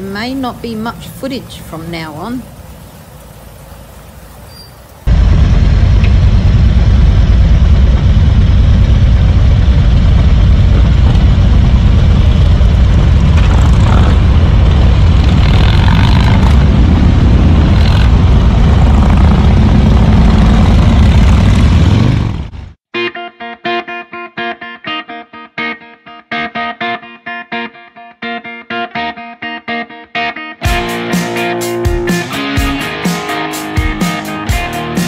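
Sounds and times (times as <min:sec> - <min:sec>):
wind: 0:00.0 - 0:22.7
motorcycle engines rumbling: 0:05.1 - 0:22.7.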